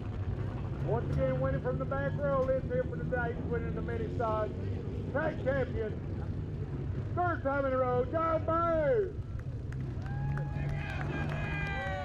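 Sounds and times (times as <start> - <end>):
low hum and rumble: 0.0 - 12.0.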